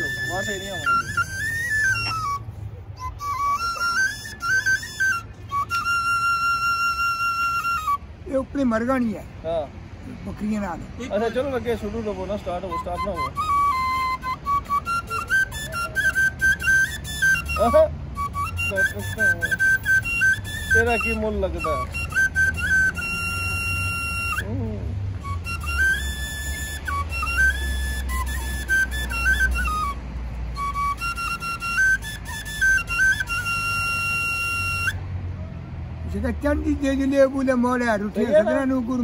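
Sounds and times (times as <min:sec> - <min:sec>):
bamboo flute melody: 0:00.0 - 0:09.1, 0:12.4 - 0:39.0.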